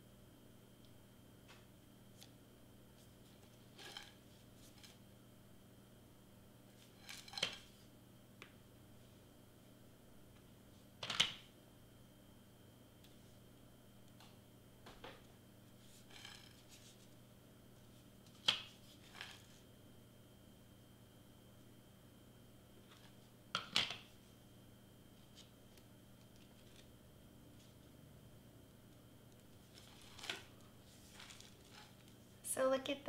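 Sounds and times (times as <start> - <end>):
faint steady hum: 0.0 - 33.0
clicks and rustles of handling: 28.9 - 32.2.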